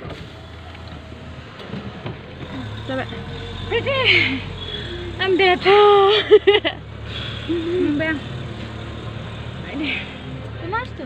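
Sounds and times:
car cabin rumble: 0:00.0 - 0:11.0
deep drone: 0:00.0 - 0:11.0
voices: 0:00.8 - 0:11.0.

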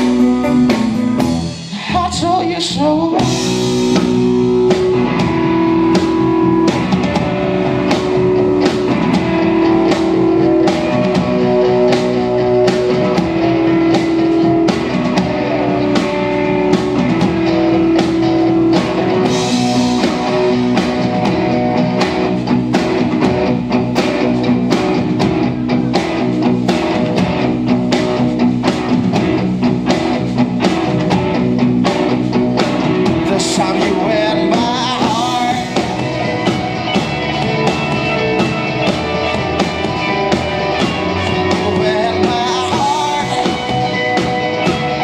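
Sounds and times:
bass guitar: 0:00.0 - 0:45.0
electric guitars: 0:00.0 - 0:45.0
drum beat: 0:03.2 - 0:45.0.

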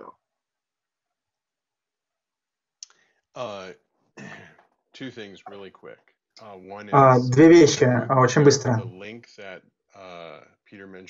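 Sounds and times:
man speaking: 0:03.4 - 0:11.0.

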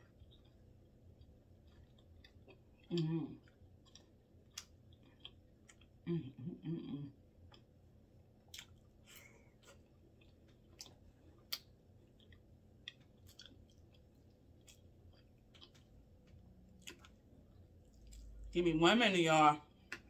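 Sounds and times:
chewing and mouth sounds: 0:00.0 - 0:06.4, 0:07.1 - 0:07.8, 0:08.4 - 0:18.5, 0:19.8 - 0:20.0.

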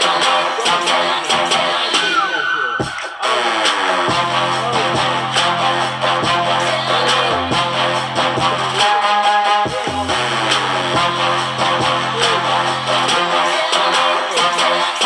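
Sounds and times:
loud music with guitar and bass: 0:03.2 - 0:09.1.

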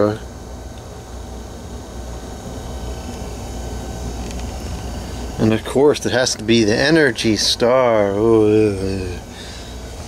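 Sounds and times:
low machinery hum with faint hiss: 0:00.0 - 0:10.0.

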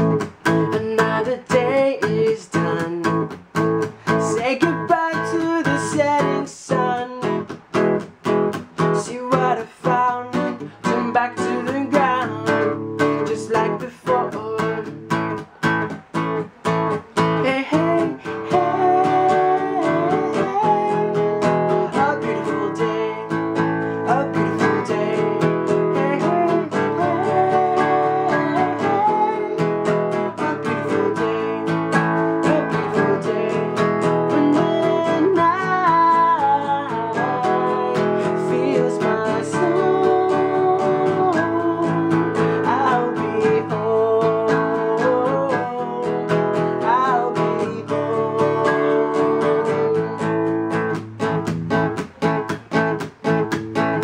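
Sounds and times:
man singing: 0:00.0 - 0:07.7, 0:08.8 - 0:51.0
acoustic guitar strumming: 0:00.0 - 0:54.0.

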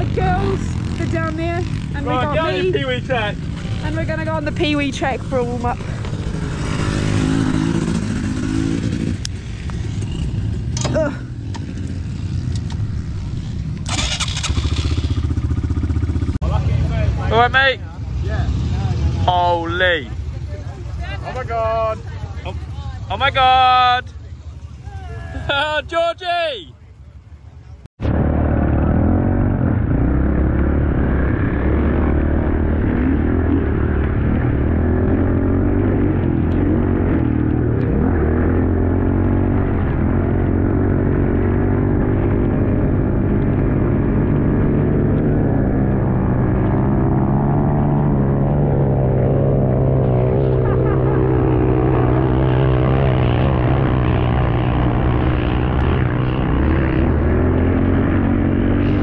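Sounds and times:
dirt bike engine revving: 0:00.0 - 0:20.3, 0:28.0 - 0:59.0.

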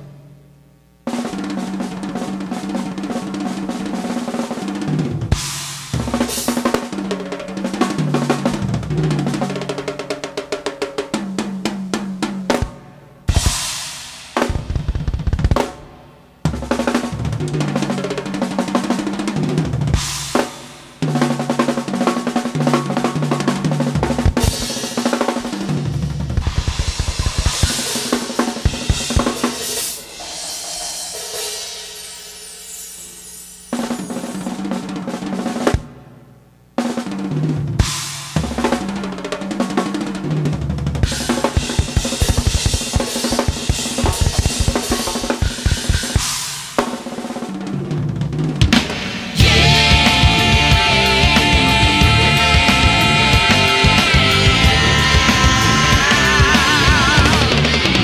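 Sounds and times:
drum kit playing: 0:01.0 - 0:58.0
cymbal crashes: 0:24.4 - 0:34.8.

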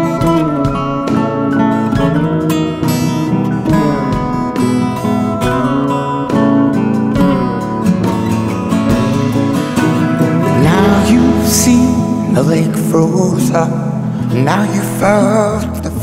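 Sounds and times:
acoustic guitar picking and strumming: 0:00.0 - 0:16.0.

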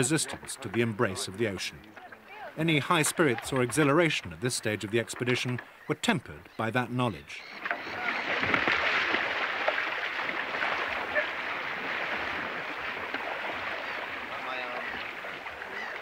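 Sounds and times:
water churning and splashing: 0:00.0 - 0:05.7, 0:07.4 - 0:16.0.

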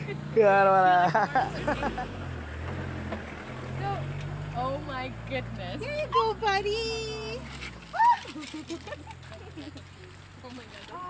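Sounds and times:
laughter: 0:01.0 - 0:02.1, 0:08.2 - 0:09.8.

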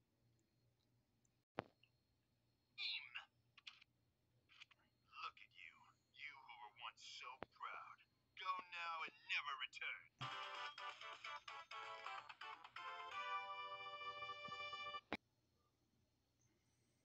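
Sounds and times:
tinny cartoon voice from phone: 0:02.8 - 0:03.3, 0:05.2 - 0:10.0.

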